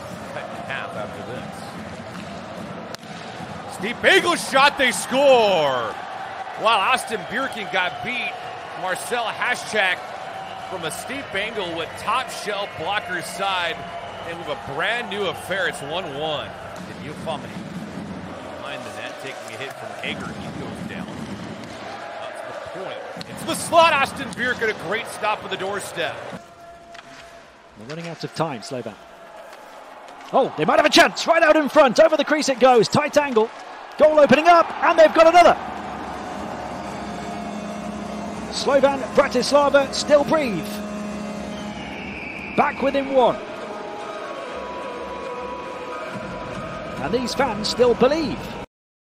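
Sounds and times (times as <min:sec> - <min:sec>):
crowd cheering: 0:00.0 - 0:48.7
crowd din: 0:33.3 - 0:48.6
held tone: 0:36.3 - 0:43.4.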